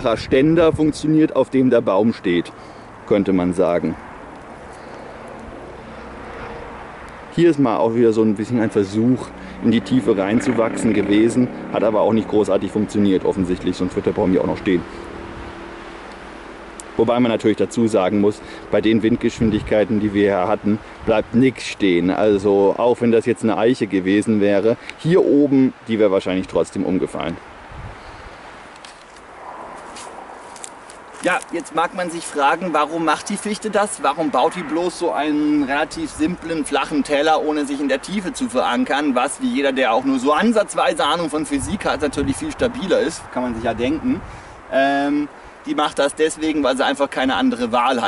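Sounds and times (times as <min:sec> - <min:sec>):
wind noise: 0:00.0 - 0:01.1, 0:13.2 - 0:16.0, 0:18.4 - 0:21.6, 0:27.2 - 0:28.5, 0:41.0 - 0:44.8.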